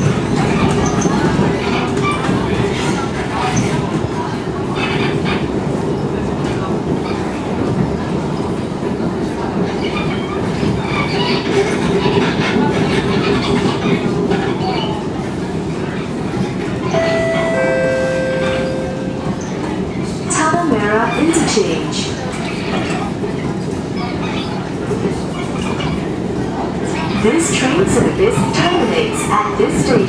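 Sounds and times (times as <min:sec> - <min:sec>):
train wheels rumbling on rail: 0:00.0 - 0:30.0.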